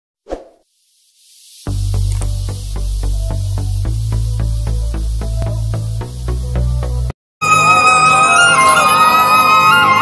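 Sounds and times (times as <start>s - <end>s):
faint rising hiss: 0.4s - 7.1s
electronic music with deep bass: 1.7s - 7.1s.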